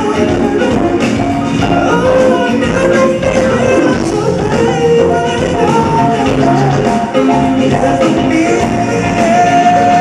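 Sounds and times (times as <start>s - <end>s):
electric guitars: 0.0s - 10.0s
live rock band: 0.0s - 10.0s.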